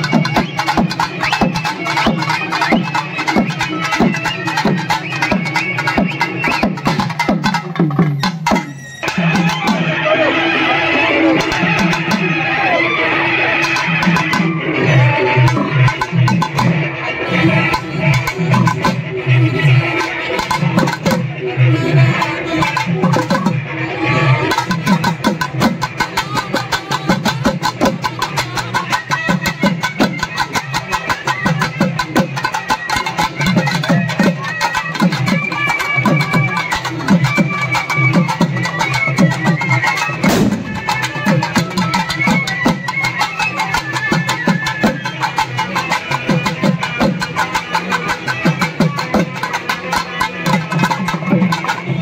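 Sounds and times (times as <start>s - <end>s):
long wind pipe melody: 11.0s - 52.0s
fast drumming on a drum: 24.5s - 52.0s
barrel drum beaten quickly: 40.1s - 42.9s
sharp clicking drum strokes: 40.2s - 42.8s.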